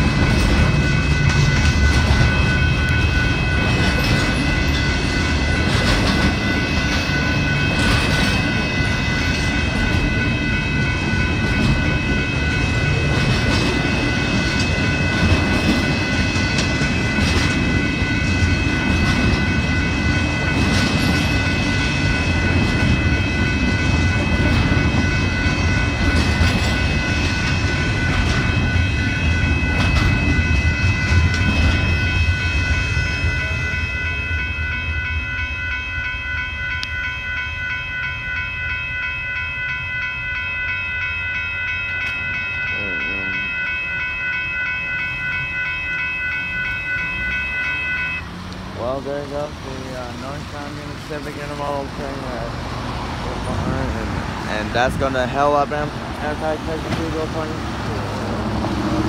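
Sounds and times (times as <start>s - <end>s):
crossing warning bell ringing: 0.0s - 59.0s
freight train rumbling past: 0.0s - 59.0s.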